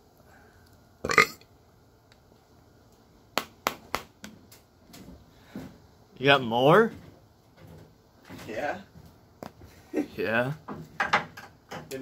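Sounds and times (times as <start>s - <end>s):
man burping loudly: 1.0s - 1.4s.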